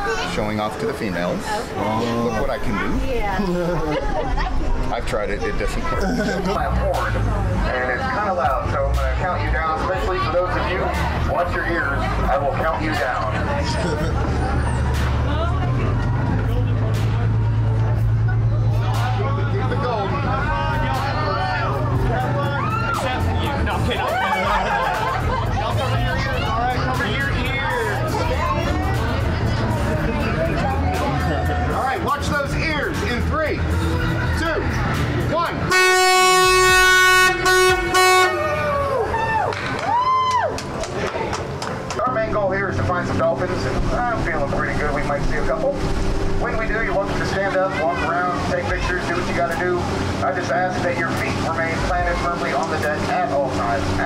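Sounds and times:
voices: 0.0 - 39.5, 40.6 - 54.0
passengers talking: 0.0 - 54.0
boat horn long low blast: 35.7 - 38.8
people shouting: 38.3 - 40.6.

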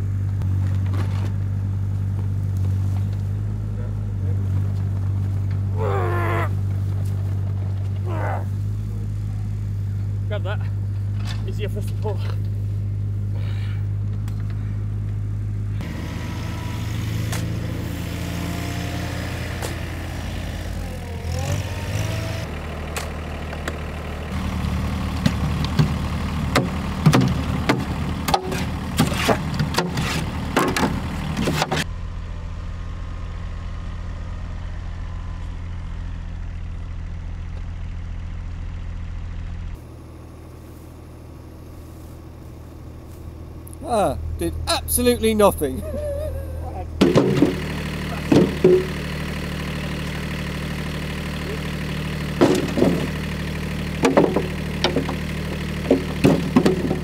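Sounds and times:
tractor engine idling: 0.0 - 57.0
shovel scraping soil and stones: 28.5 - 30.3.

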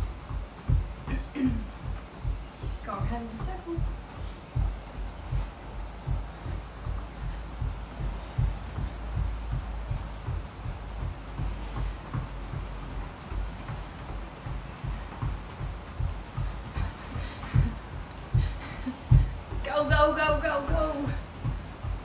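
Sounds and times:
footfalls running on the spot: 0.0 - 22.0.

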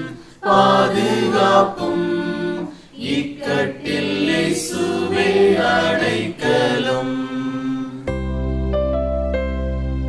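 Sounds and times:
mixed choir singing: 0.0 - 8.1.

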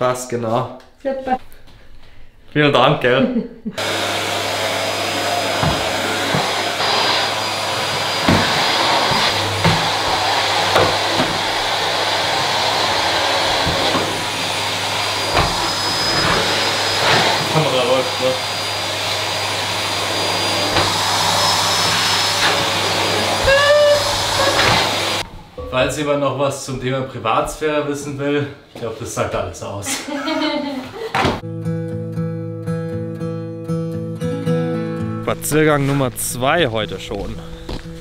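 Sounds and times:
vacuum knocking on tiled floor: 3.8 - 25.4
vacuum cleaner running: 3.8 - 25.6.

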